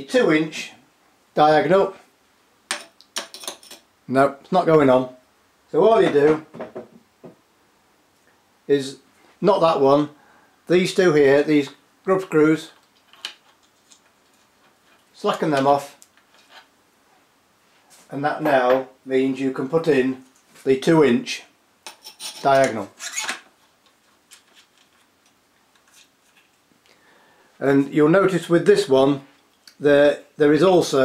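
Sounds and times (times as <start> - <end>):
hands handling metal parts: 12.8 - 16.7.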